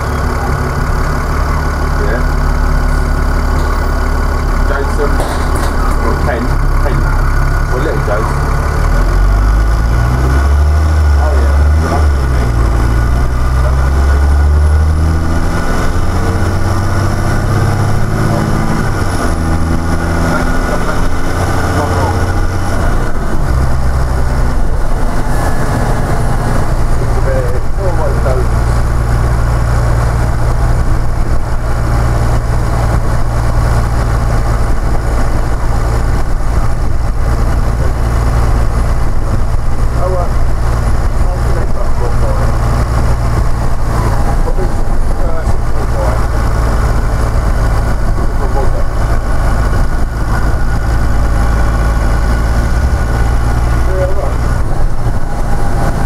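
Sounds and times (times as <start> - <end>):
bus diesel engine: 0.0 - 56.0.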